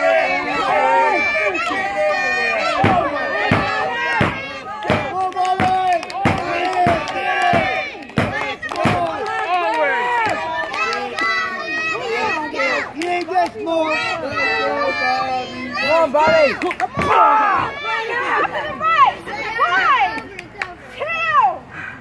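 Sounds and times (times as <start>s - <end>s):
crowd shouting and chattering: 0.0s - 22.0s
rhythmic sharp hits: 2.8s - 9.1s.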